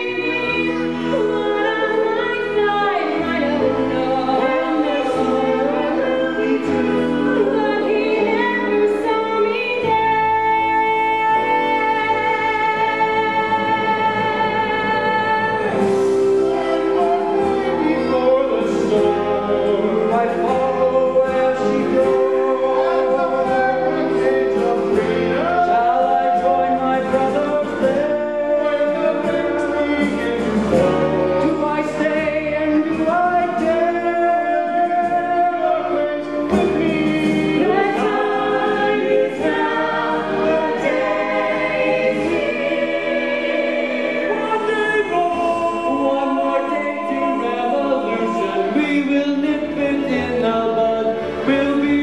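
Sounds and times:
chorus singing: 0.0 - 52.0.

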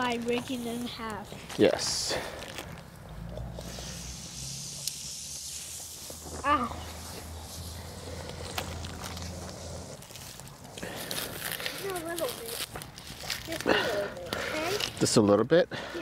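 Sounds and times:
wood fire crackling and hissing: 0.0 - 16.0.

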